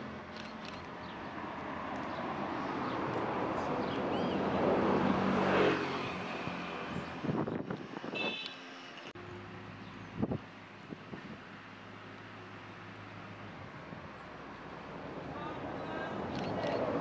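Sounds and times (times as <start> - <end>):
motor vehicle passing: 0.0 - 10.4.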